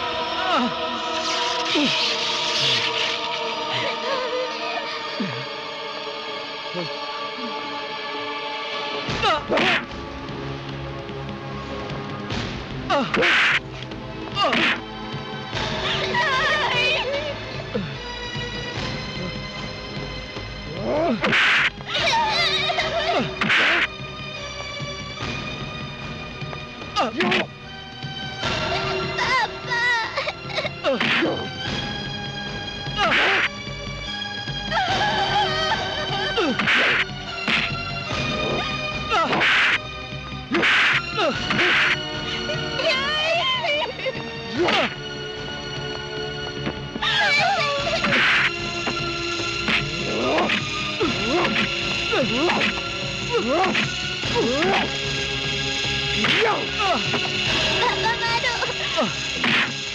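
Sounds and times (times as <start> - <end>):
background film score: 0.0 - 59.9
punch and whip-crack hits: 36.6 - 37.8, 59.4 - 59.8.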